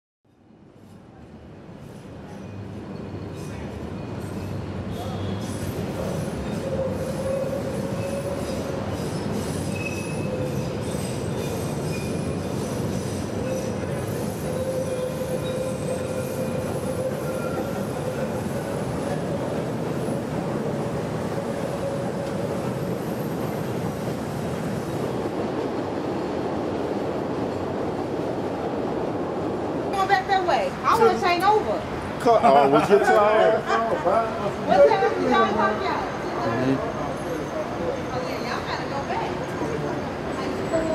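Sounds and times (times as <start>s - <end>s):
train rumble: 0.7s - 32.4s
train wheels squealing: 1.8s - 19.3s, 20.1s - 25.2s, 35.3s - 40.9s.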